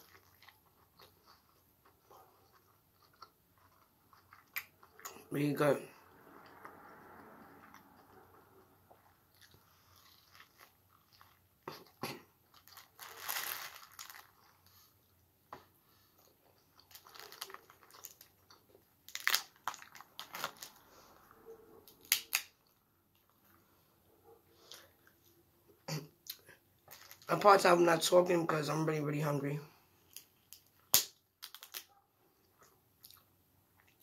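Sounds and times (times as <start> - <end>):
person chewing and crunching: 0.0 - 5.3, 6.3 - 21.1, 26.2 - 27.3, 30.0 - 34.0
crab shell cracking: 30.1 - 31.9.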